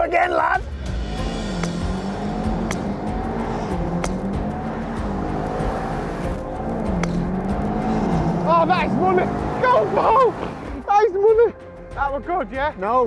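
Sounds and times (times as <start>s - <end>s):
wavering bass drone music: 0.0s - 12.6s
sharp hits: 0.6s - 10.8s.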